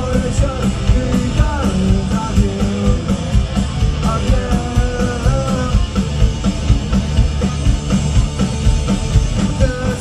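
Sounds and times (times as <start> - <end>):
person singing lead vocal: 0.0 - 3.3, 4.0 - 6.0, 9.3 - 10.0
bass guitar: 0.0 - 10.0
distorted electric guitars: 0.0 - 10.0
fast drum beat: 0.0 - 10.0.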